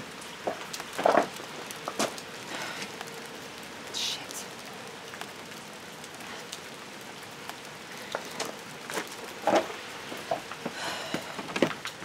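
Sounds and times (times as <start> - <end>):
raindrops ticking: 0.0 - 12.0
steady rain hiss: 0.0 - 12.0.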